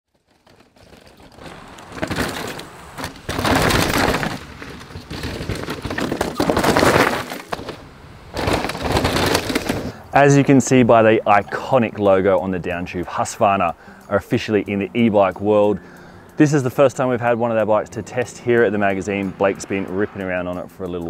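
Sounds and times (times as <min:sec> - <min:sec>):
clicks and rattles: 0:00.1 - 0:10.0
bike tyres skidding on dirt: 0:00.1 - 0:11.8.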